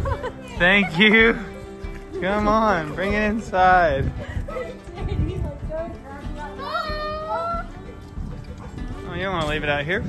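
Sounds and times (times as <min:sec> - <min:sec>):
children playing: 0:04.2 - 0:09.0
child calling out: 0:06.5 - 0:07.7.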